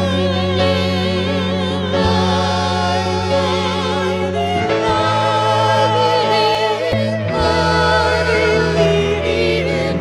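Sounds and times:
choir singing: 0.0 - 10.0
held low bass notes: 0.0 - 10.0.

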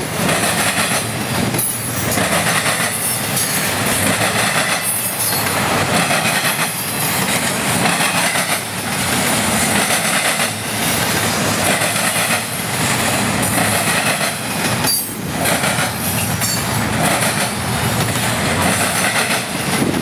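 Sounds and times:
freight train wheels on rails: 0.0 - 20.0.

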